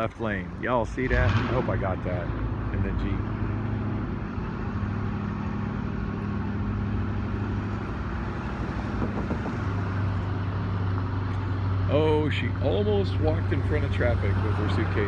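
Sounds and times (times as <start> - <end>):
low engine hum: 0.0 - 15.0
road noise: 0.0 - 15.0.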